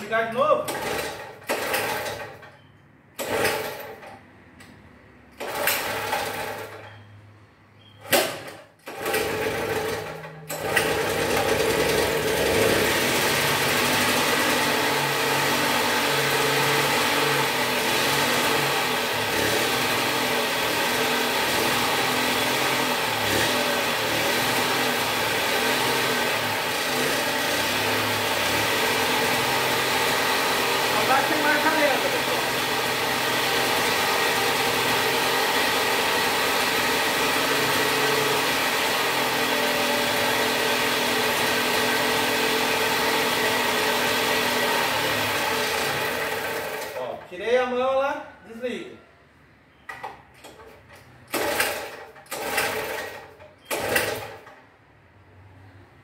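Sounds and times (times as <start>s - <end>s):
small two-stroke engine running: 8.9s - 47.1s, 51.3s - 54.5s.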